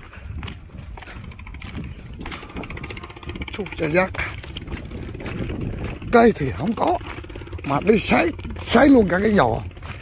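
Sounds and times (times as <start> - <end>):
footsteps on gravel: 0.0 - 10.0
low microphone rumble: 0.0 - 10.0.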